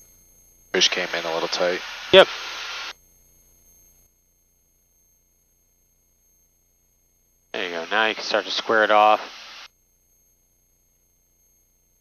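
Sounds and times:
intercom hiss: 0.8 - 2.9, 7.6 - 9.7.

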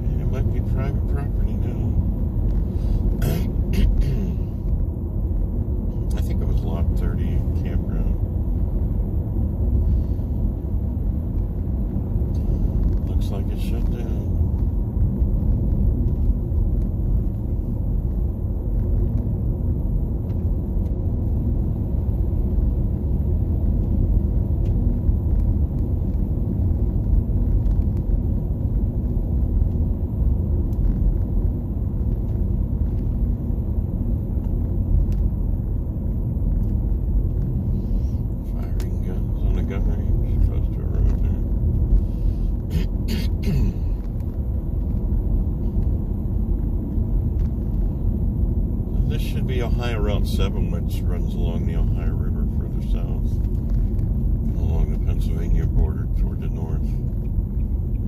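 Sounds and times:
car road rumble from inside cabin: 0.0 - 58.0
tyre and road noise: 0.0 - 58.0.

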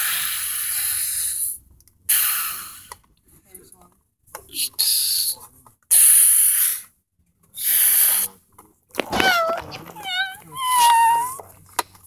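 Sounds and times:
person breathy hissing: 0.0 - 2.9, 5.9 - 6.9, 7.6 - 8.3
person high-pitched cries: 9.2 - 11.4.

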